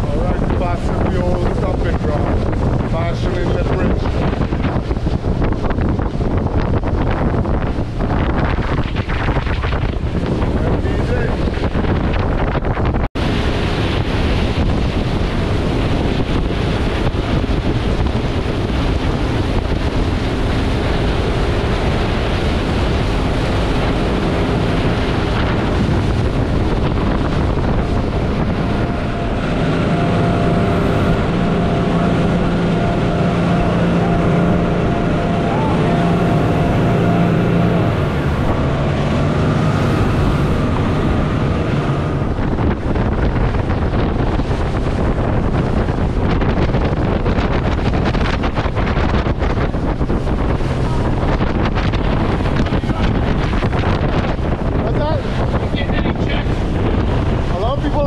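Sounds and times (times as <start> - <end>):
motorboat engine: 0.0 - 58.0
rushing water: 0.0 - 58.0
wind on microphone: 0.0 - 58.0.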